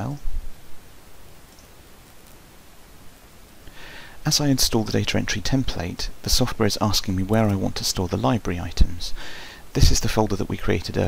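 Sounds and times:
man speaking: 0:00.0 - 0:00.3, 0:04.2 - 0:11.0
low room noise: 0:00.0 - 0:11.0.

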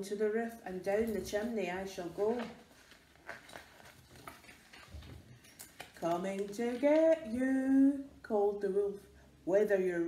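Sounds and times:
paper rustling: 0:01.1 - 0:07.2.

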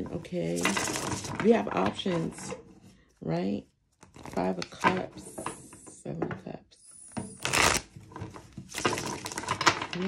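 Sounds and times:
cards being shuffled: 0:00.5 - 0:01.4, 0:07.3 - 0:10.0.

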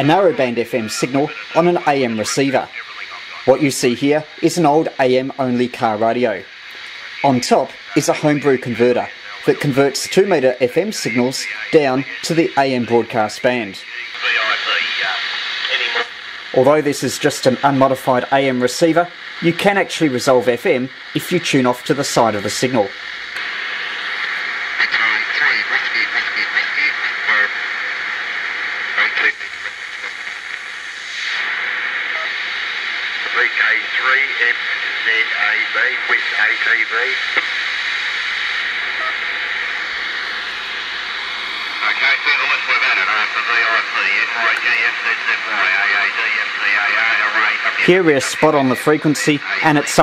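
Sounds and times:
radio hiss: 0:00.0 - 0:50.0
tinny radio voices: 0:00.0 - 0:50.0.

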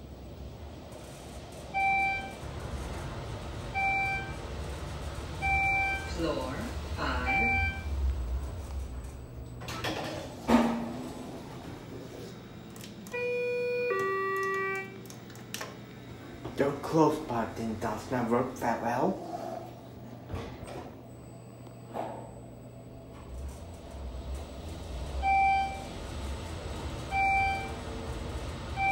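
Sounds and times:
elevator running rumble: 0:00.0 - 0:28.9
short electronic beeps: 0:01.8 - 0:02.4, 0:05.4 - 0:06.2, 0:07.0 - 0:07.9.

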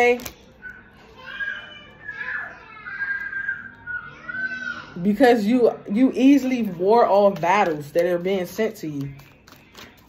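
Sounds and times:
children calling and squealing: 0:00.3 - 0:05.1.

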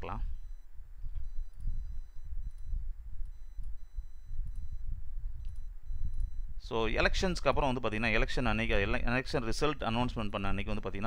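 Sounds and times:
microphone background rumble: 0:00.0 - 0:11.0.

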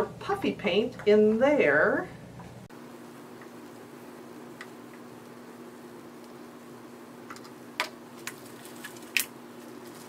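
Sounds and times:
faint steady hum: 0:00.0 - 0:10.0
plastic bag crinkling: 0:08.1 - 0:10.0.

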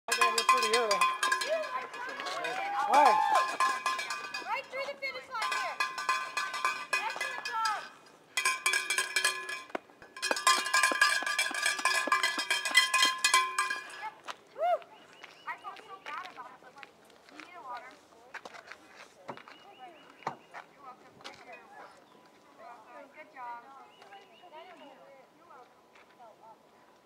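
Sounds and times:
bell shaken rapidly: 0:00.1 - 0:14.2.

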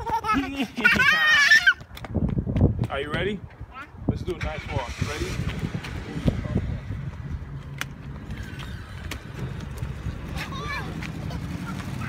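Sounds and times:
car driving past: 0:04.4 - 0:10.4
children's and adults' voices: 0:09.6 - 0:12.0.

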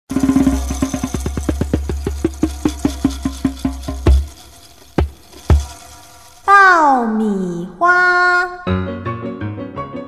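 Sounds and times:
rapid pitched popping knocks: 0:04.0 - 0:05.8.

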